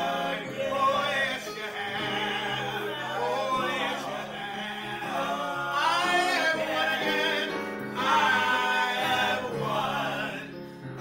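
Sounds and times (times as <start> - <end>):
man and woman singing gospel: 0.0 - 11.0.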